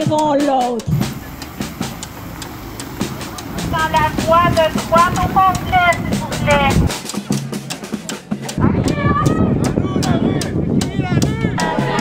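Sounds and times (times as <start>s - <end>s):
heavy truck and traffic rumble: 0.8s - 6.9s.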